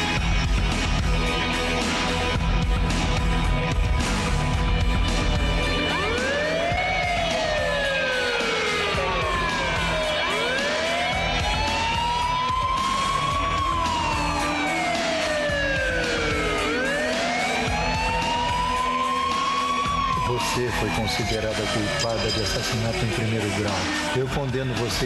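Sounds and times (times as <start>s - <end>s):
police siren wailing: 0.0s - 24.9s.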